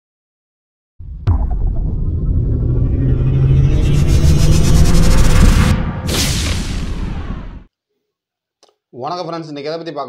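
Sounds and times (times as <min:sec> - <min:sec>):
steady low hum: 0:01.0 - 0:07.4
deep loud rumble: 0:01.0 - 0:07.7.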